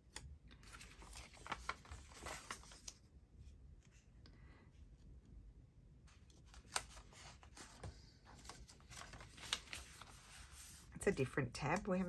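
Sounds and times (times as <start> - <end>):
paper rustling and crinkling: 0.1 - 3.1, 6.1 - 12.0.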